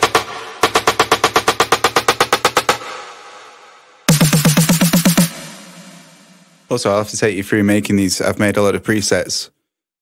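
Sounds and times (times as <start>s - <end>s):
electronic snare drum roll: 0.0s - 6.7s.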